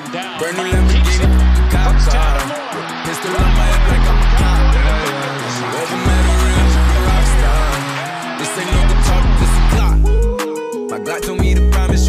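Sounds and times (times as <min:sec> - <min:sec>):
hip hop track: 0:00.0 - 0:12.0
deep held bass notes: 0:00.8 - 0:02.4, 0:03.4 - 0:05.0, 0:06.1 - 0:07.7, 0:08.8 - 0:10.4.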